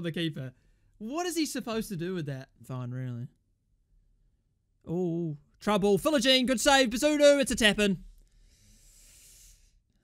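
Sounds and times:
faint hiss: 0:08.4 - 0:09.8.

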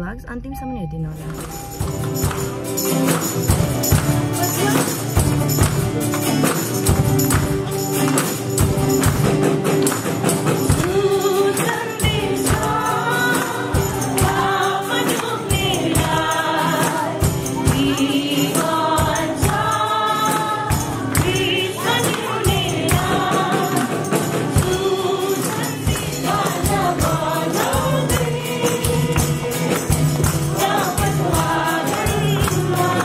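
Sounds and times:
acoustic guitars: 0:01.2 - 0:33.0
tambourine beat: 0:01.2 - 0:33.0
group singing gospel song: 0:09.0 - 0:33.0.

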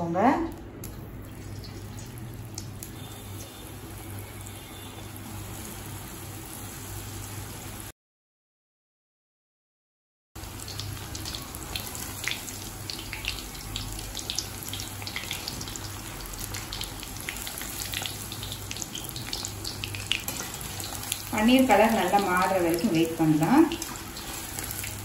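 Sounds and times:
oil crackles and pops: 0:00.5 - 0:03.6
deep-frying sizzle: 0:00.8 - 0:07.9, 0:10.4 - 0:25.0.

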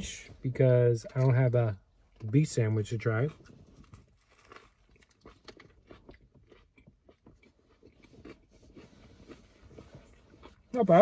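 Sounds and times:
chewing with crunches: 0:02.1 - 0:11.0.

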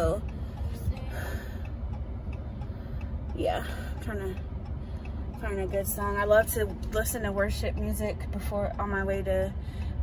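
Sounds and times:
car cabin low hum: 0:00.0 - 0:10.0
turn signal ticking: 0:00.0 - 0:10.0.

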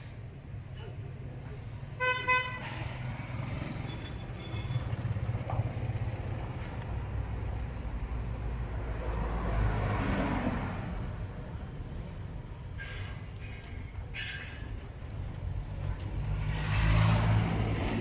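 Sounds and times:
road traffic rumble: 0:00.0 - 0:18.0
vehicle horn toot: 0:02.0 - 0:02.8
vehicle passing: 0:02.6 - 0:07.4, 0:08.0 - 0:11.2, 0:15.7 - 0:18.0.

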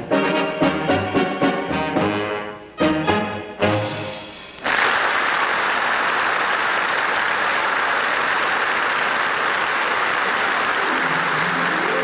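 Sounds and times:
brass band playing: 0:00.0 - 0:04.5
audience applauding: 0:04.6 - 0:12.0.

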